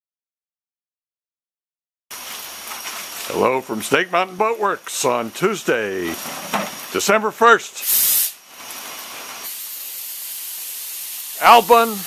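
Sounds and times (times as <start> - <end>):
steady hiss: 2.1 - 12.0.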